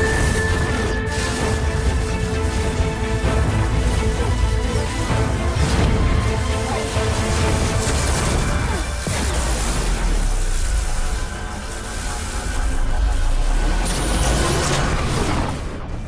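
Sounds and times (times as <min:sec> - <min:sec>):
dramatic orchestral film music: 0:00.0 - 0:16.0.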